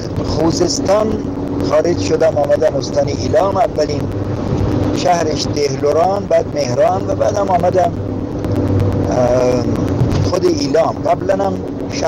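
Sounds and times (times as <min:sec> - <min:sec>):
car engine: 0:00.0 - 0:12.0
road noise inside car: 0:00.0 - 0:12.0.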